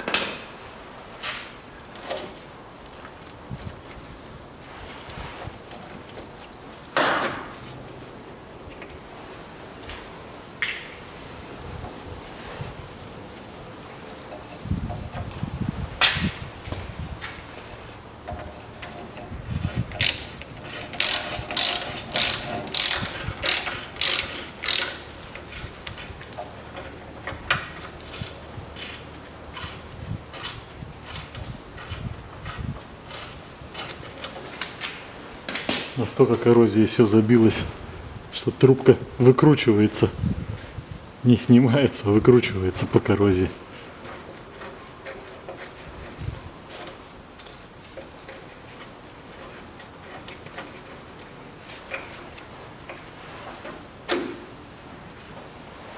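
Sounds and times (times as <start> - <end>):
ratchet wrench clicking: 20.0 - 25.0.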